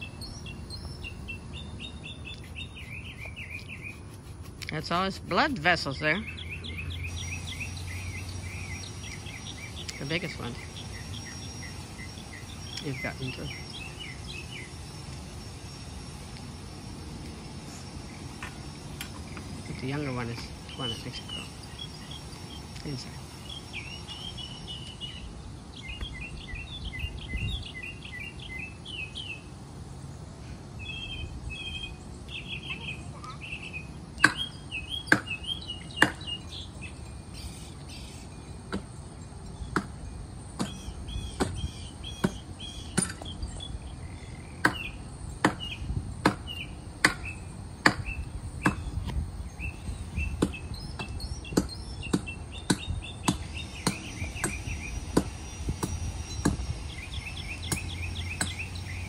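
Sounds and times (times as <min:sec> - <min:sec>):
birds chirping: 0:00.0 - 0:59.0
axe chopping tree trunk: 0:41.4 - 0:41.6, 0:44.6 - 0:48.8.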